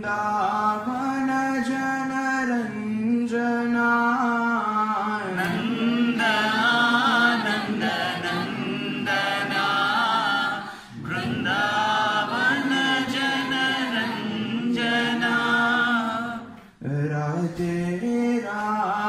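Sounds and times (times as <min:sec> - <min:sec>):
group chanting a hymn in unison: 0:05.0 - 0:19.0.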